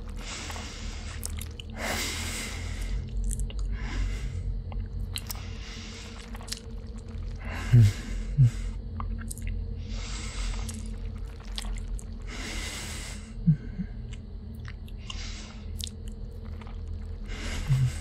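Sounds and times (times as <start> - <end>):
heavy breaths: 0.0 - 6.5, 7.1 - 8.8, 9.8 - 11.5, 12.1 - 14.2, 15.0 - 15.8, 16.4 - 18.0
low hum: 0.0 - 18.0
wet mouth sucking and lip smacks: 4.7 - 5.4, 10.5 - 12.2.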